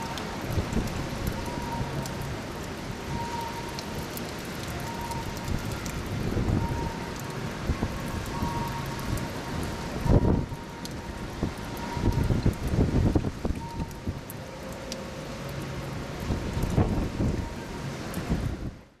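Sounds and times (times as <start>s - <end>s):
steady rain: 0.0s - 19.0s
wind gusts buffeting microphone: 5.4s - 7.0s, 7.6s - 14.3s, 16.2s - 17.5s.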